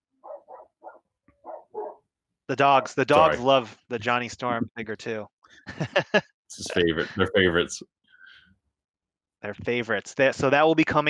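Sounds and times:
dogs barking: 0.2s - 3.4s.

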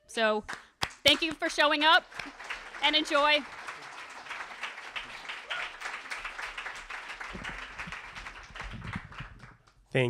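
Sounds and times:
audience applauding: 0.8s - 9.7s
low bumps: 7.4s - 9.6s.

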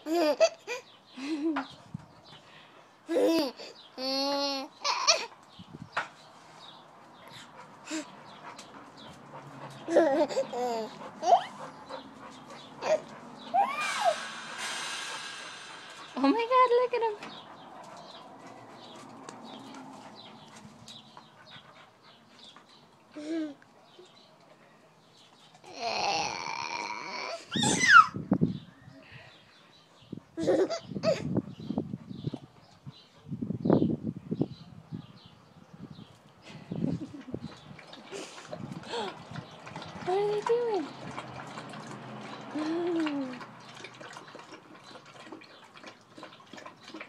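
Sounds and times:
dog whimpering: 9.9s - 11.7s, 12.8s - 14.2s, 25.7s - 28.2s.

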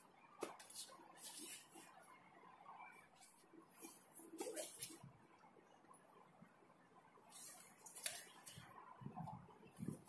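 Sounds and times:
faint clothing and feet rustling: 3.1s - 5.1s.

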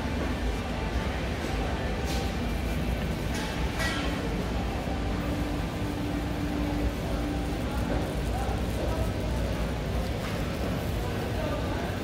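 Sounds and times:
indoor rumble and hum: 0.0s - 12.0s.

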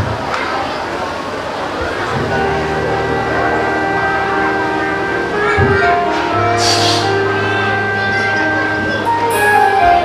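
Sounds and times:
instrumental backing track: 2.0s - 10.0s.

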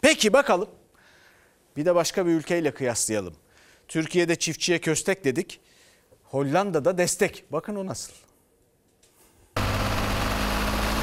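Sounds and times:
fertilizer spreader noise: 9.6s - 11.0s
tractor engine hum: 9.6s - 11.0s.

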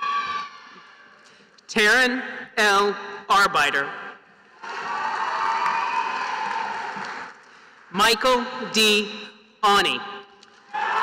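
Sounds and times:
audience applause: 4.6s - 7.4s
audience cheering: 4.6s - 7.4s, 10.7s - 11.0s.

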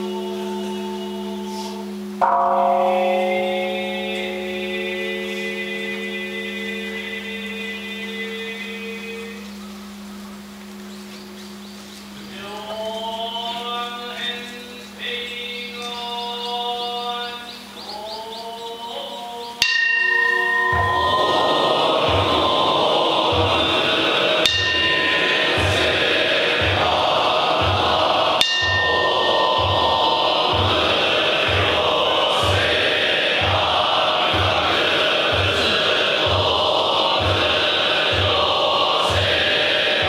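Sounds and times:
bell struck: 0.0s - 8.0s, 19.6s - 38.4s
monks chanting in unison: 0.0s - 10.4s, 11.2s - 40.0s
low drum beat: 20.4s - 40.0s.

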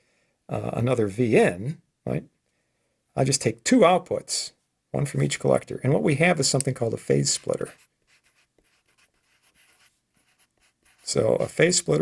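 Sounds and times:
marker scratching on paper: 7.2s - 11.6s.

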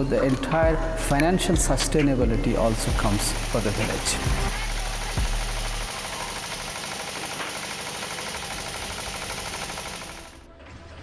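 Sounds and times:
grain mill rattling: 2.6s - 10.4s.

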